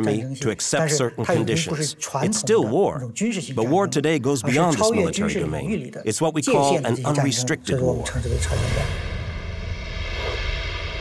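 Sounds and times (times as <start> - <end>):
low rumbling drone: 7.9 - 11.0.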